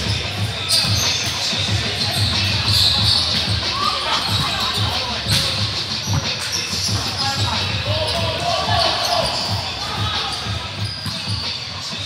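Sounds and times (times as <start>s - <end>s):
background music: 0.0s - 12.0s
voices: 0.0s - 12.0s.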